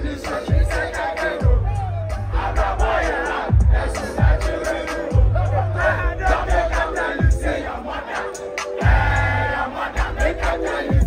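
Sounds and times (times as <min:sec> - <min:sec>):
crowd shouting and singing: 0:00.0 - 0:11.0
live concert music over pa: 0:00.0 - 0:11.0.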